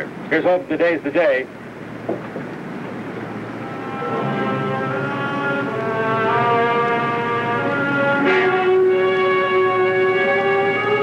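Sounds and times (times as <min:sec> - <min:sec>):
held chords of score music: 0:03.2 - 0:11.0.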